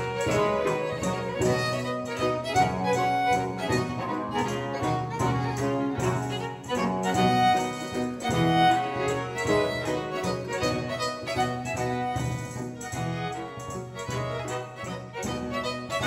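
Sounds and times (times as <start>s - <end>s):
baroque string ensemble: 0.0s - 16.0s.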